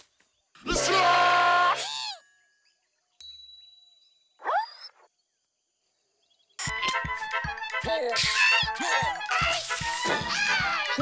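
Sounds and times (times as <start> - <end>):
music: 6.6 - 11.0.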